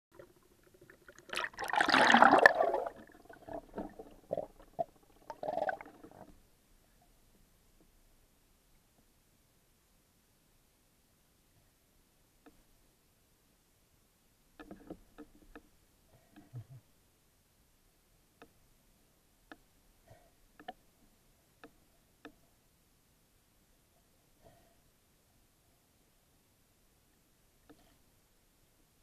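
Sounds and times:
sea water splashing and gurgling: 0.2s - 6.2s
faint underwater clicks and knocks: 2.9s - 6.5s, 12.4s - 12.8s, 14.5s - 16.7s, 18.4s - 18.6s, 19.4s - 19.8s, 20.5s - 22.4s, 27.6s - 28.0s.

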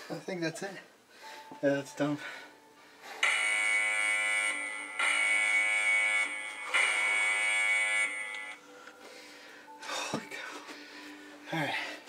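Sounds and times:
buzzing alarm tones: 3.2s - 8.6s.

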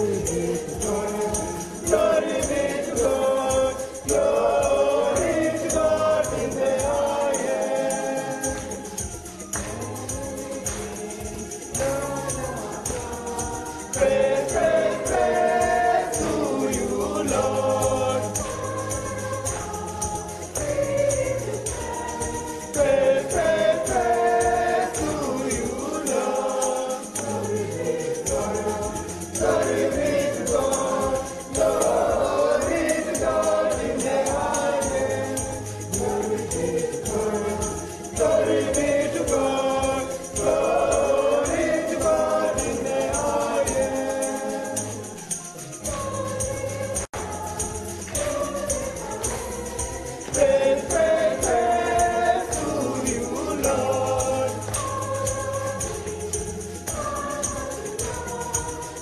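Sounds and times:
choir singing a hymn in harmony: 0.0s - 59.0s
high percussion beat: 0.0s - 59.0s.

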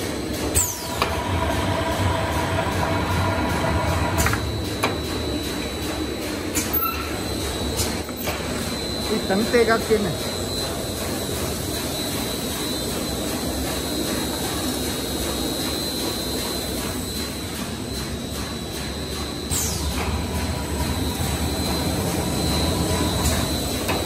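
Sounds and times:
winding machine running: 0.4s - 6.5s, 8.7s - 24.0s.

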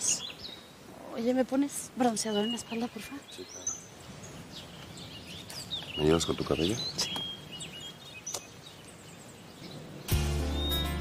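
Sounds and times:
birds chirping: 0.0s - 11.0s
soundtrack music with chords and bass: 10.1s - 11.0s.

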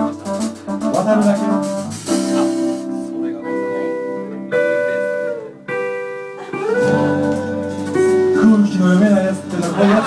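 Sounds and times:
guitar chords ringing: 0.0s - 10.0s.

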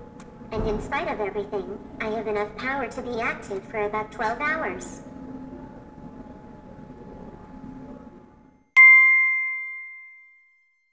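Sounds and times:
thin steady hum: 0.0s - 10.9s
bright bell-like ding: 8.8s - 10.7s.

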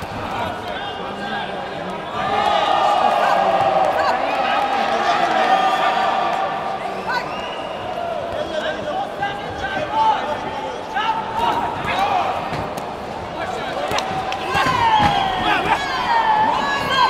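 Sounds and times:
people shouting in a hall: 0.0s - 17.0s.

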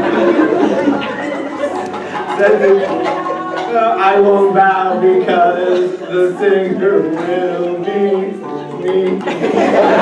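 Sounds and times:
audience chatter: 0.0s - 10.0s
people chuckling: 0.0s - 10.0s.

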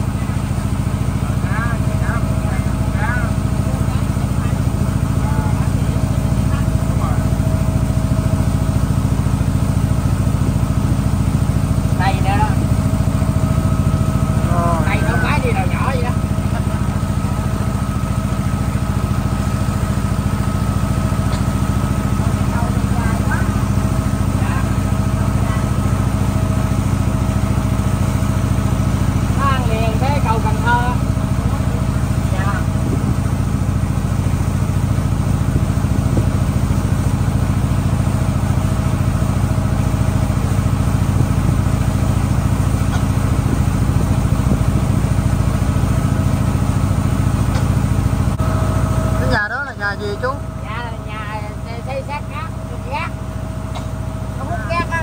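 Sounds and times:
people talking: 0.0s - 7.4s, 12.0s - 12.6s, 14.4s - 16.8s, 22.5s - 23.6s, 24.3s - 25.8s, 29.4s - 33.0s, 49.2s - 53.2s, 54.4s - 55.0s
boat engine droning: 0.0s - 55.0s
engine whine: 0.0s - 55.0s.

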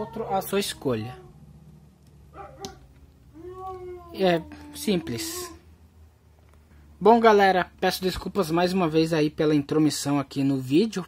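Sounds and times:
dog barking: 2.3s - 2.9s.

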